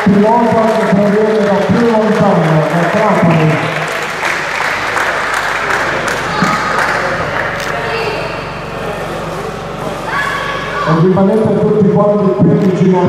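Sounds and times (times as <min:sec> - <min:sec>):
audience applauding: 0:00.0 - 0:08.5
voices: 0:00.0 - 0:13.0.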